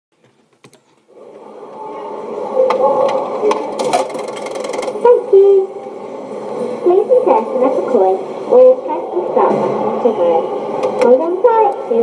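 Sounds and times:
muffled audio through small speaker: 0.2s - 12.0s.

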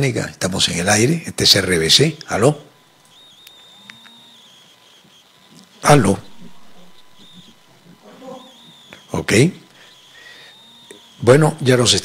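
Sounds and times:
faint high whine: 0.0s - 12.0s
sharp clicks: 2.2s - 12.0s.

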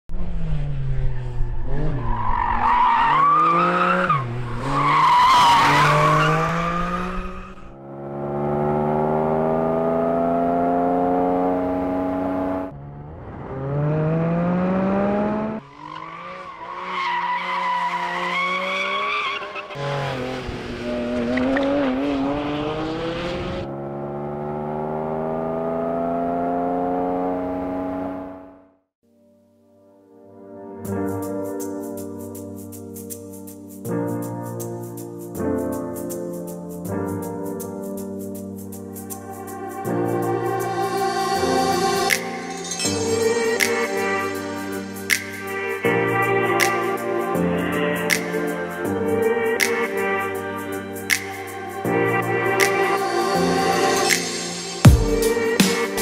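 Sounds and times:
car engine accelerating hard: 0.1s - 28.8s.

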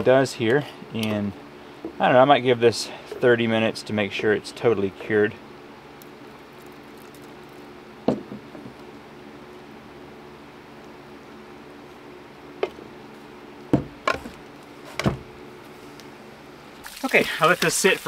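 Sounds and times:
faint steady hum: 0.0s - 18.0s
plastic knocks on wooden deck: 8.1s - 8.7s, 13.7s - 14.2s.

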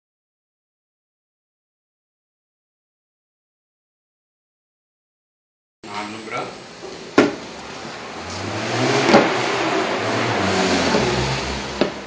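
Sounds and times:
vehicle engine passing: 7.5s - 12.0s.

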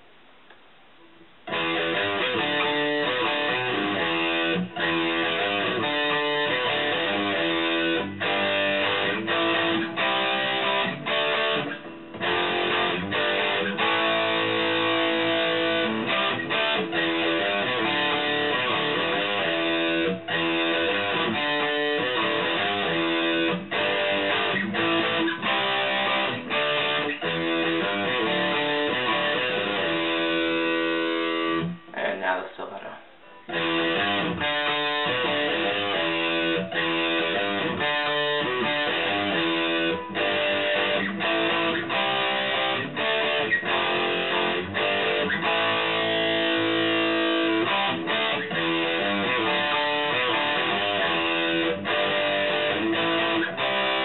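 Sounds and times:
electric guitar fast picking: 1.5s - 31.9s, 33.5s - 54.0s.

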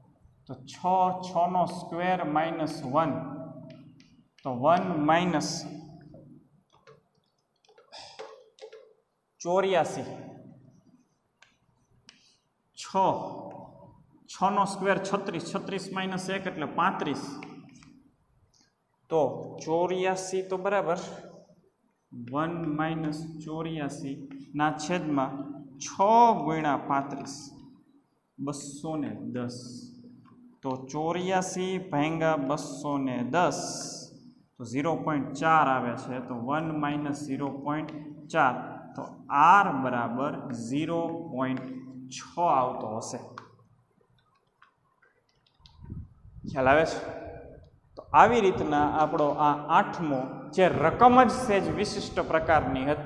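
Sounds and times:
man speaking: 0.5s - 3.8s, 4.4s - 6.2s, 9.4s - 10.5s, 12.8s - 17.6s, 19.1s - 21.3s, 22.2s - 27.6s, 28.4s - 30.0s, 30.6s - 43.5s, 46.5s - 53.0s
chalk tapping on blackboard: 6.1s - 9.0s, 11.4s - 12.4s.

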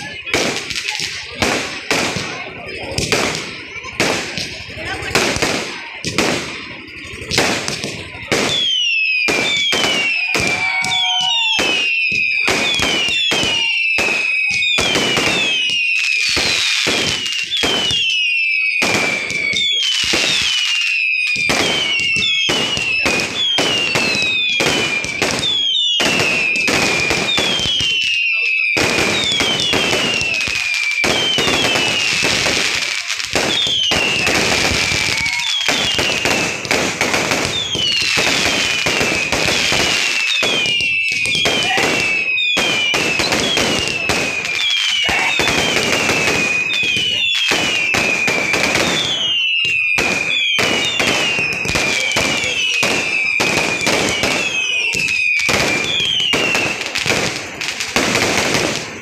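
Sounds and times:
falling firework whistle: 0.0s - 59.0s
fireworks bangs: 0.0s - 59.0s.

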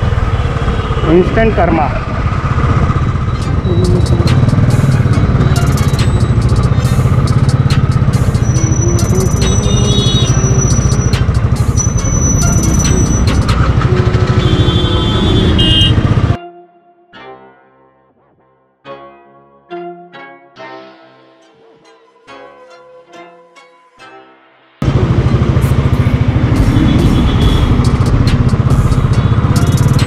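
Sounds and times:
motorcycle engine running: 0.0s - 16.4s, 24.8s - 30.0s
horns tooting: 8.3s - 16.4s, 24.8s - 30.0s.

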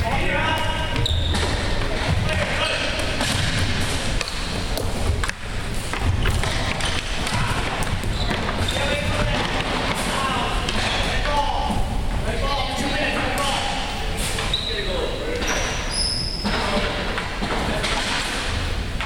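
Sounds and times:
sticks knocking ball and floor: 0.4s - 11.4s.

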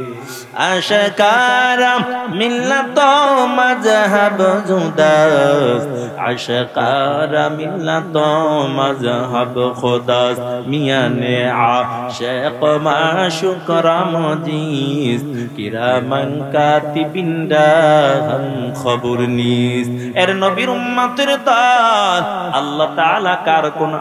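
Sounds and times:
man chanting through microphone: 0.0s - 24.0s.

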